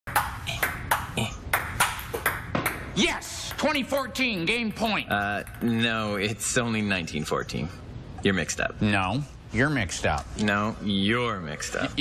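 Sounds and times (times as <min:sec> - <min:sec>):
table tennis ball hits: 0:00.1 - 0:04.7.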